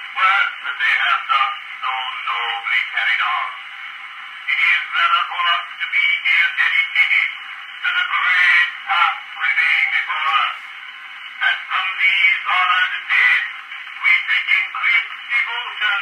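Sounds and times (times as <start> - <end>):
man's voice on phonograph recording: 0.0 - 3.8, 4.4 - 16.0.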